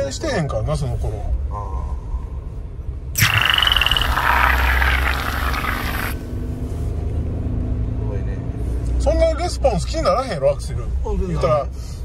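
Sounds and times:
car engine and road noise: 6.1 - 12.0.

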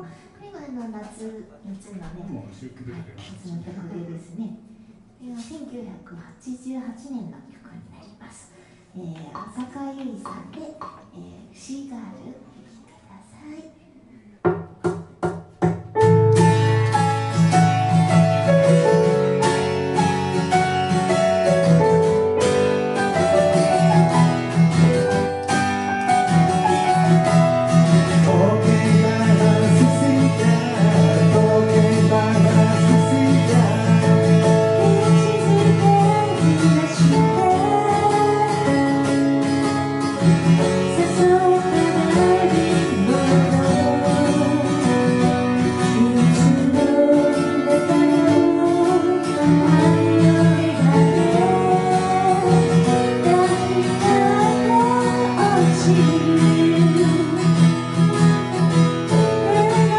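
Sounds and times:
acoustic guitar: 12.5 - 59.9
woman singing: 28.2 - 39.2, 40.6 - 57.7, 59.2 - 59.9.

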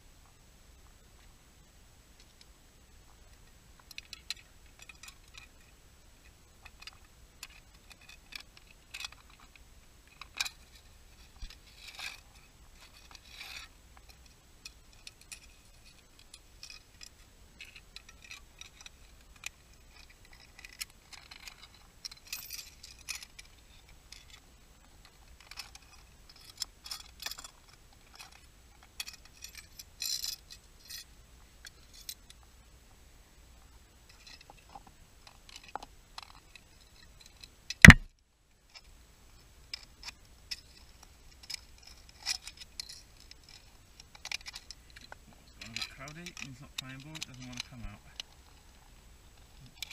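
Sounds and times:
hard objects scraping rock and shell: 10.2 - 14.4
metal tool clicking on rock: 37.2 - 38.1.

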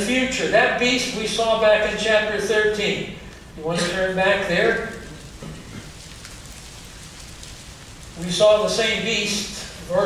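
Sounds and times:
pages turning rustle: 4.8 - 9.0.

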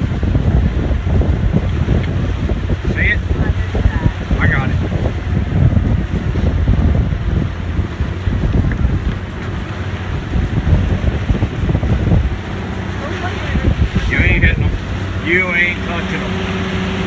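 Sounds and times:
bow wave rushing and splashing: 0.0 - 17.0
wind buffeting microphone: 0.0 - 17.0.

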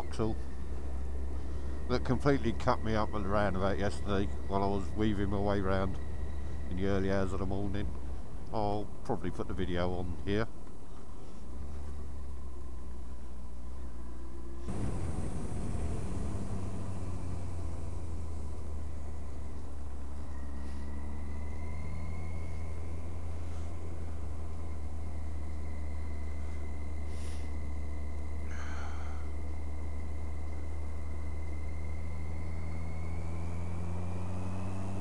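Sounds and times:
motorcycle engine drone: 0.0 - 35.0
wind rumble on microphone: 14.7 - 18.3.

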